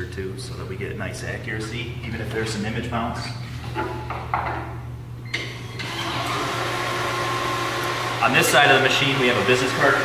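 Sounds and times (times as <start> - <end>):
machine humming: 0.0 - 10.0
air feed rushing whir: 5.7 - 10.0.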